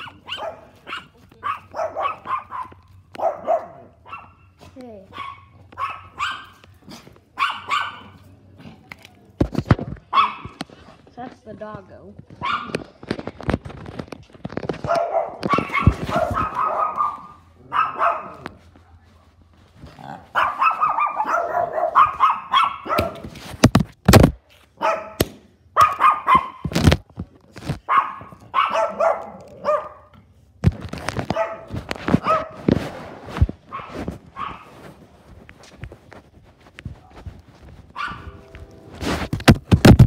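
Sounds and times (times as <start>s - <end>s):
small dog barking: 0.0s - 4.5s, 5.1s - 6.6s, 7.4s - 8.2s, 10.1s - 10.6s, 12.4s - 12.8s, 14.8s - 19.2s, 20.3s - 23.2s, 24.8s - 25.2s, 25.8s - 26.7s, 27.9s - 30.1s, 31.3s - 32.6s, 33.7s - 34.7s, 37.9s - 38.4s
sharp knocks and thuds: 22.9s - 24.4s, 39.3s - 40.0s.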